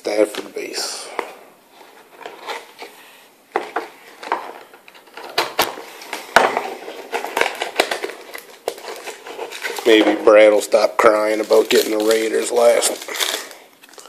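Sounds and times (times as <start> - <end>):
cardboard pack crinkling and scraping: 1.7 - 14.0.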